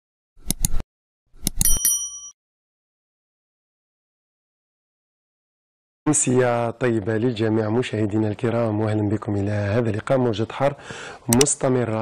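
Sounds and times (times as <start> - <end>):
mouse clicks: 0.4 - 0.8, 11.3 - 11.5
bright bell ding: 1.6 - 2.4.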